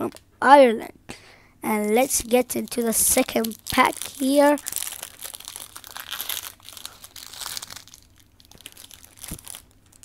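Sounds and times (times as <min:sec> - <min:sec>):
foil wrapper crinkling: 0:01.8 - 0:10.0.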